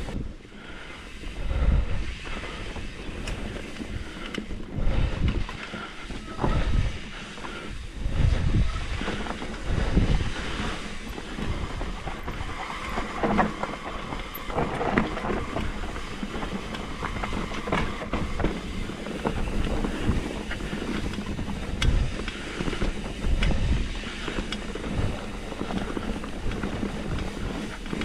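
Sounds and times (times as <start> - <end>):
bike rattling and knocking: 0.0 - 28.0
bike tyres on dirt: 0.0 - 28.0
wind rumble on microphone: 0.0 - 28.0.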